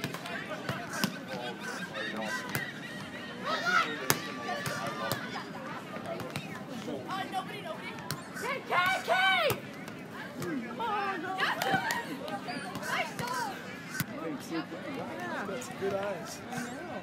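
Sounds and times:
players calling out: 0.0 - 17.0.

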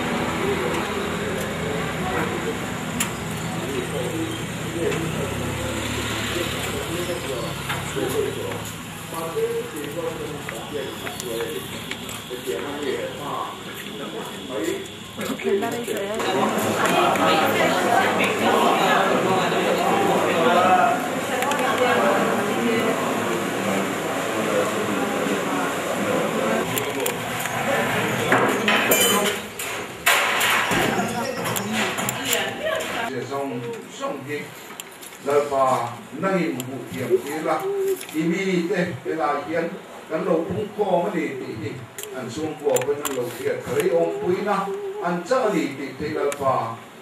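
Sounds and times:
people's voices: 0.0 - 34.6, 35.2 - 46.9
car passing by: 4.1 - 8.3.

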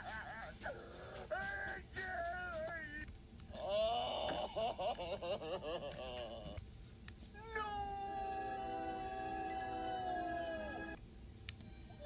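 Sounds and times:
cartoon character crying wail: 7.4 - 11.0.

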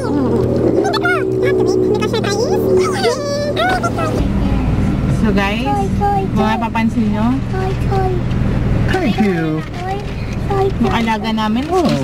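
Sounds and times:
car engine rumble from inside: 0.0 - 12.0
people's voices: 0.0 - 12.0.

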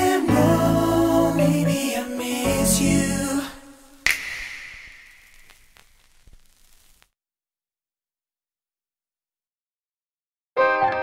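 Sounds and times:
pop song: 0.0 - 4.4
sharp snap with ringing tail: 4.0 - 6.0.

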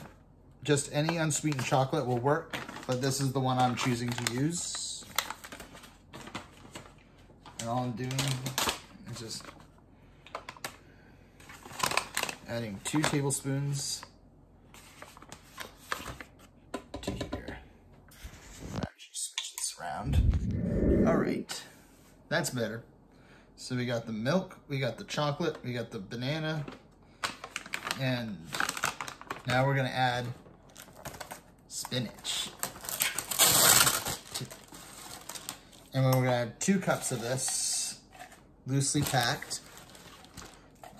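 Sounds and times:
plastic container crinkling: 38.1 - 40.9.

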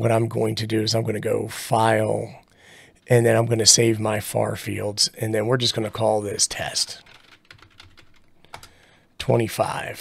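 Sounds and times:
typing on keyboard: 7.0 - 8.8.

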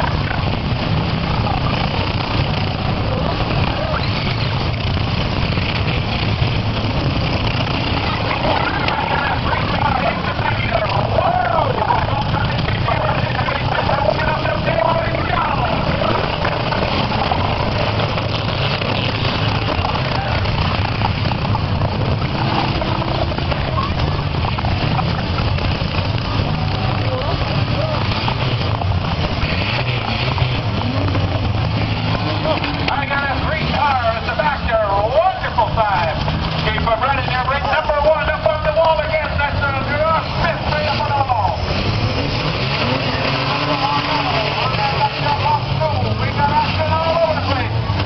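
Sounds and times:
car engines droning: 0.0 - 48.0
crowd voices: 0.0 - 48.0.

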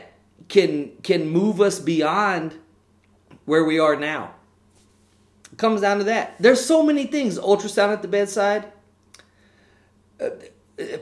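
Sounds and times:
man talking: 0.0 - 2.6, 3.4 - 4.4, 5.5 - 8.8
mouth click: 9.0 - 9.3
soft intake of breath: 9.2 - 10.0
short throaty vocal sound: 10.2 - 11.0.

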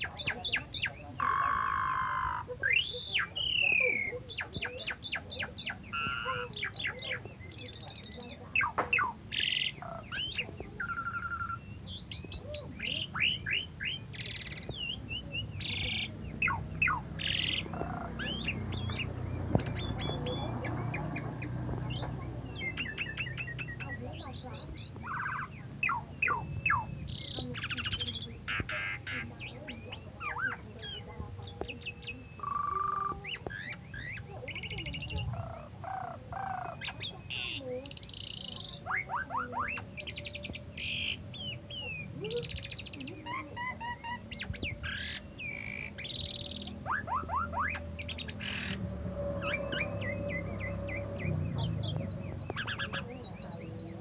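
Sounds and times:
starling singing varied song: 0.0 - 54.0.

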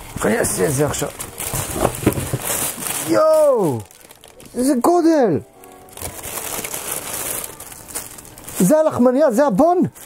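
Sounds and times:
packaging rustling and crinkling: 0.0 - 10.0.

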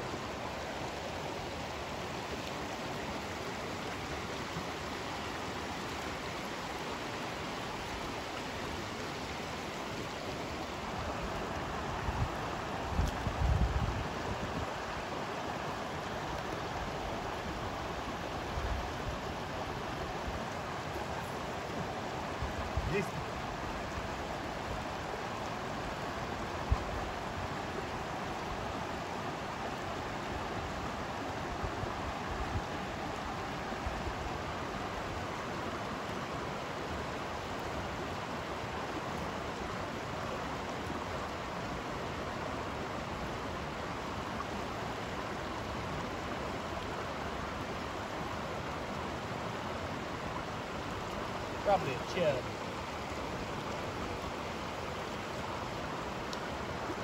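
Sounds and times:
stream rushing over rocks: 0.0 - 57.0.

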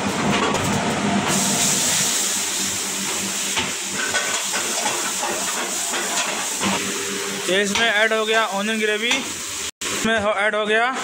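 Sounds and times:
onions sizzling in hot oil: 1.3 - 9.7.

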